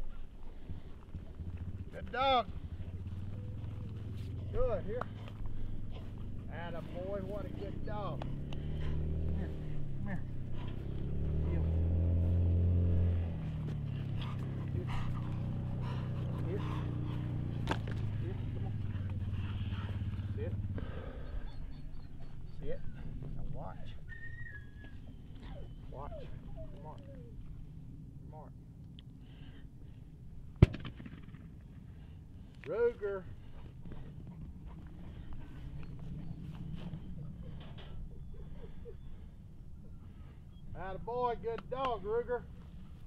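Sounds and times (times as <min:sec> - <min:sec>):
motor engine droning: 0:00.0 - 0:30.5, 0:31.8 - 0:43.0
gunshot with echo: 0:30.6 - 0:31.4.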